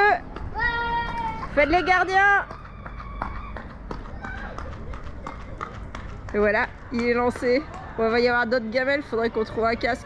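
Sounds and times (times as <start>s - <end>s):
running footsteps on pavement: 0.0s - 10.0s.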